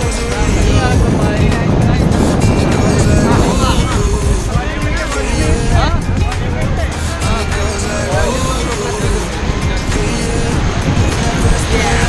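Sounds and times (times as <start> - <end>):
music: 0.0 - 12.0
voices: 0.0 - 12.0
whitewater rapids rushing: 0.0 - 12.0
wind on microphone: 0.0 - 12.0.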